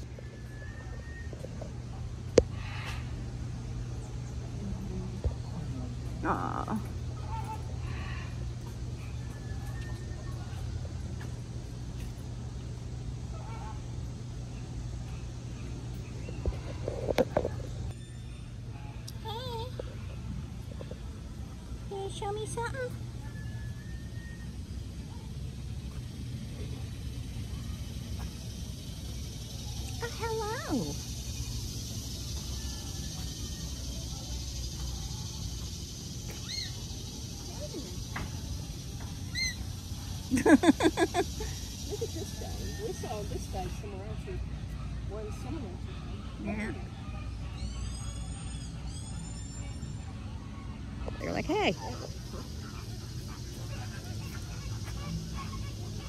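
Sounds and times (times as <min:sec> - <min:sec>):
low outdoor rumble: 0:00.0 - 0:56.0
steady low hum: 0:00.0 - 0:56.0.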